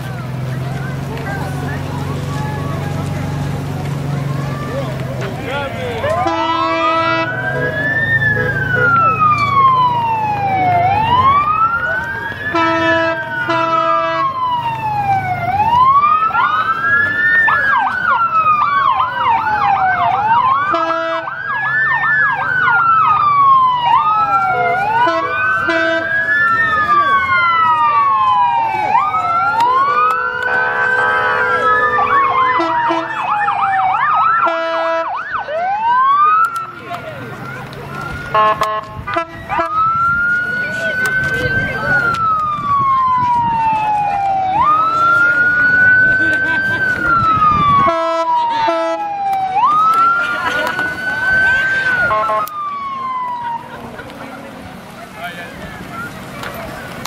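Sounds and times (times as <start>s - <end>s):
emergency sirens wailing: 0.0s - 57.0s
vehicle horn blasts: 6.2s - 7.3s, 12.5s - 14.3s, 20.7s - 21.3s, 25.0s - 26.1s, 30.3s - 33.1s, 34.4s - 35.1s, 38.3s - 39.8s, 47.8s - 49.0s, 52.0s - 52.5s.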